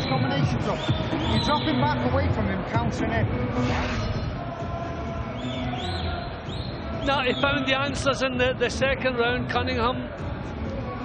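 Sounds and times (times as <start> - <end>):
crowd murmur: 0.0 - 11.0.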